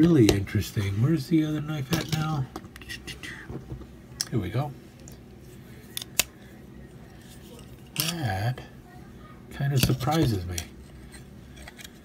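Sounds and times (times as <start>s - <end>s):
faint handling noise: 0.2s - 8.3s.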